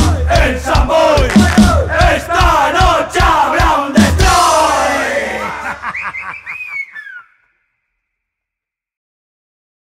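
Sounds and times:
punk song: 0.0s - 6.0s
bursts of laughter: 5.3s - 7.3s.

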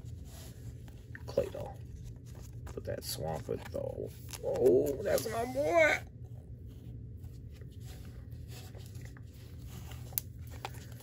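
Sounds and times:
cards and foil pack rustling: 0.0s - 6.0s, 6.6s - 11.0s.

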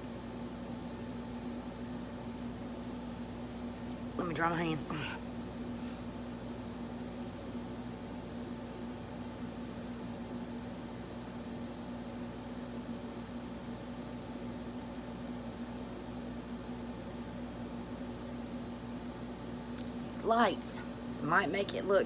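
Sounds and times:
steady mechanical hum: 0.0s - 22.0s.

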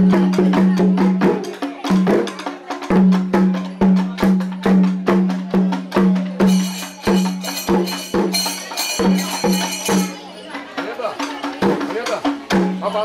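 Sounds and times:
drums in fast driving rhythm: 0.0s - 13.0s
low resonant drum tone: 0.0s - 13.0s.

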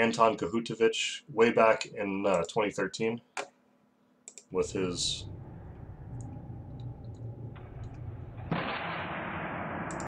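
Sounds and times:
low hum: 4.5s - 10.0s
faint clicks: 5.7s - 8.1s.

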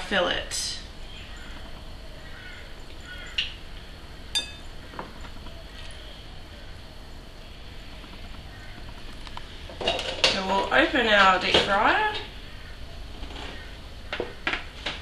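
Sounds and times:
metal fork clinking on bowl: 4.4s - 4.7s.

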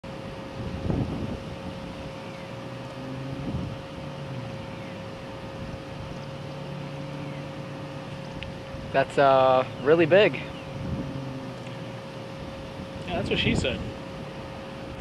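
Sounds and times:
distant traffic drone: 0.0s - 15.0s
faint steady hum: 0.0s - 15.0s.

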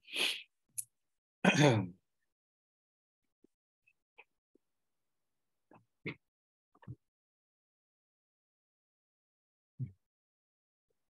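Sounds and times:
person clearing throat: 1.4s - 1.9s.

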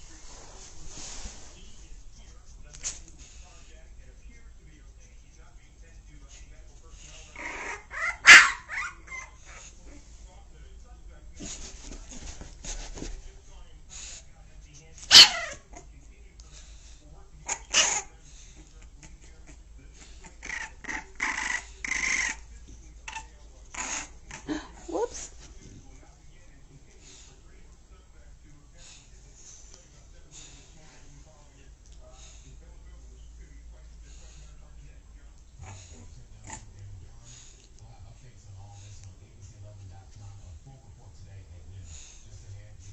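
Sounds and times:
dog barking: 7.9s - 9.0s, 15.1s - 15.6s.

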